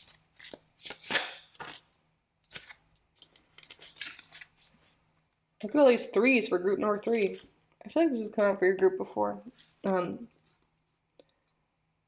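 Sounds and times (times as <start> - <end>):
card rustling against deck: 0.0 - 5.0.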